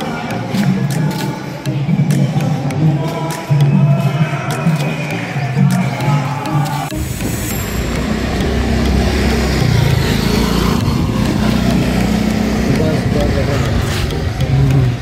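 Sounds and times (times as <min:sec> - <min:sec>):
scooter engine running: 0:06.9 - 0:15.0.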